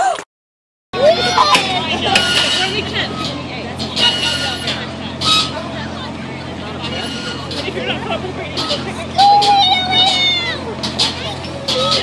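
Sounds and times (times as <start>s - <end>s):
cars passing: 1.0s - 12.0s
indistinct voices: 1.0s - 12.0s
steady low hum: 1.0s - 12.0s.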